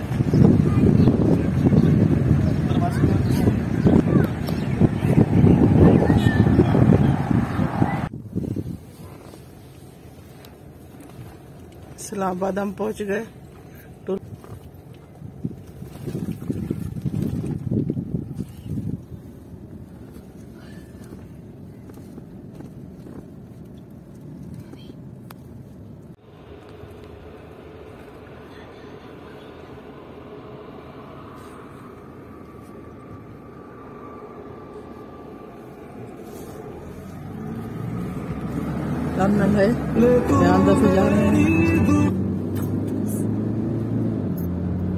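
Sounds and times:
car engine and tyre rumble: 0.0s - 44.9s.

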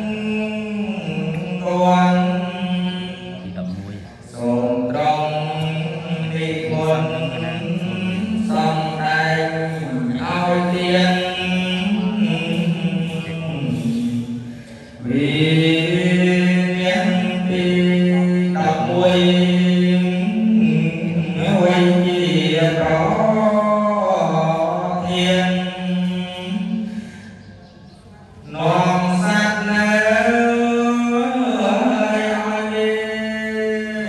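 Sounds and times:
man chanting: 0.0s - 27.4s, 28.4s - 34.0s.

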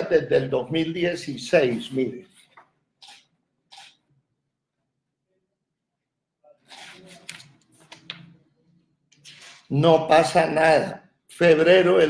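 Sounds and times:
paper rustling: 9.2s - 9.7s.

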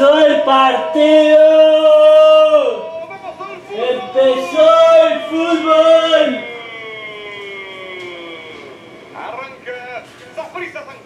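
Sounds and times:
commentator's long shout: 0.0s - 9.4s.

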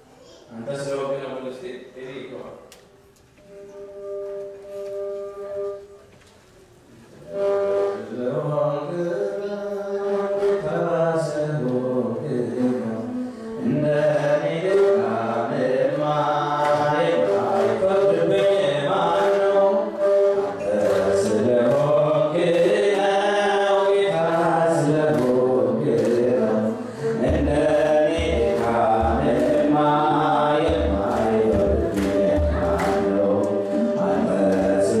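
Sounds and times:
group chanting a hymn: 8.0s - 35.0s
deep hand drum beats: 27.2s - 34.8s.

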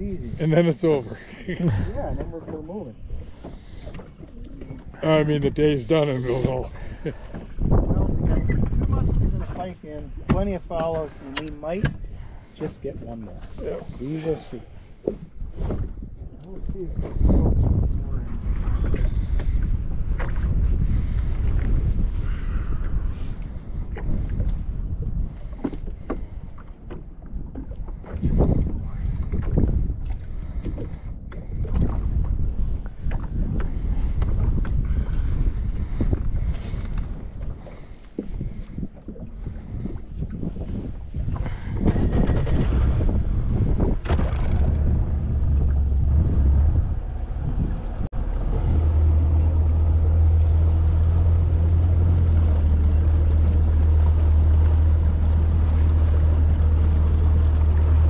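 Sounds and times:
outboard motor droning: 0.0s - 58.0s
wind buffeting microphone: 0.0s - 58.0s.

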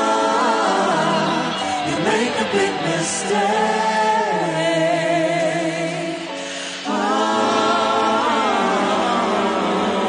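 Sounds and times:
choir singing gospel chords: 0.0s - 10.0s.

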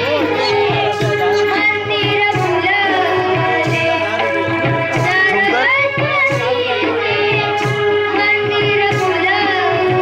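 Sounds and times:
children singing into microphones: 0.0s - 10.0s
musical accompaniment with beat: 0.0s - 10.0s.

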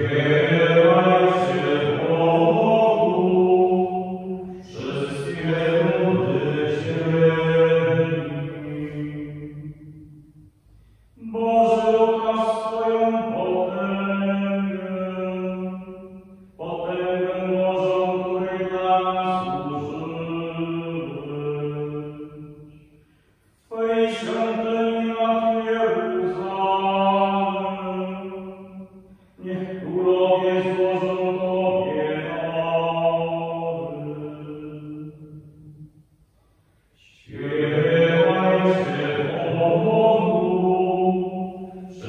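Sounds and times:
man chanting: 0.0s - 9.9s, 11.2s - 22.8s, 23.7s - 28.8s, 29.4s - 35.6s, 37.0s - 42.0s.

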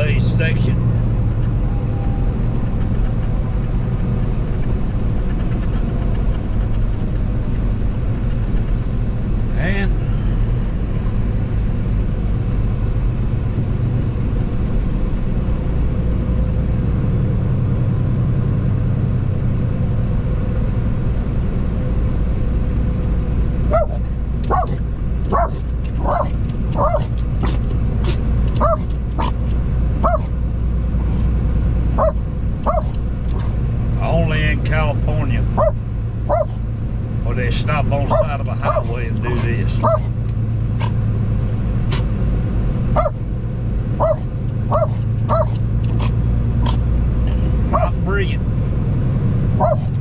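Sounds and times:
road noise inside cab: 0.0s - 50.0s
truck engine drone: 0.0s - 50.0s
dog barking: 23.7s - 27.6s, 28.6s - 29.4s, 30.0s - 30.3s, 32.0s - 33.5s, 35.6s - 36.6s, 38.1s - 39.0s, 39.8s - 40.1s, 43.0s - 43.2s, 44.0s - 46.8s, 47.7s - 48.0s, 49.6s - 49.9s.

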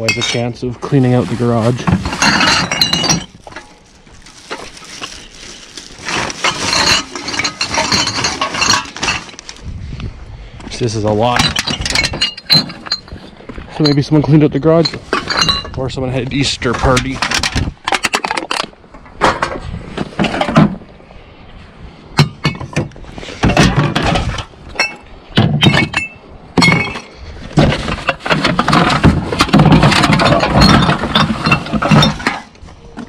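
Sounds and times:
glass bottles clinking: 0.0s - 0.6s, 1.6s - 9.4s, 11.2s - 15.8s, 22.2s - 24.0s, 24.7s - 27.1s, 27.9s - 32.5s
rustling: 0.1s - 9.7s.

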